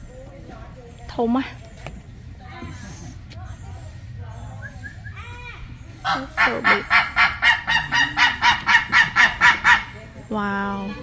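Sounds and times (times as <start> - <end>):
large bird calling rapidly: 3.7 - 10.1.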